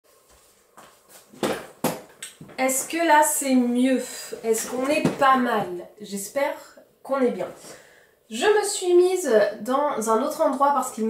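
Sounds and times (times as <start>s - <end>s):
office chair shuffling and rustling: 0.1s - 1.8s.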